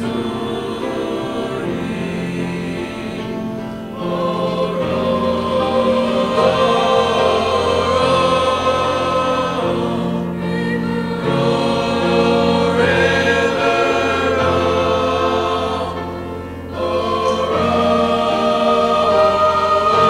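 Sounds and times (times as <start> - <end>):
choir of young voices singing: 0.0 - 20.0.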